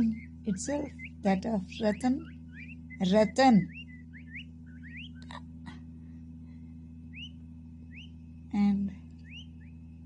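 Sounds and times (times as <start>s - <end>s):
chicks peeping: 0.0s - 6.0s, 6.7s - 8.4s, 9.0s - 10.0s.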